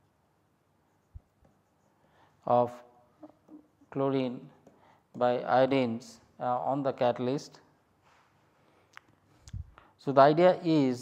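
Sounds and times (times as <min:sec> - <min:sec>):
stylus writing on tablet: 0:00.8 - 0:02.0.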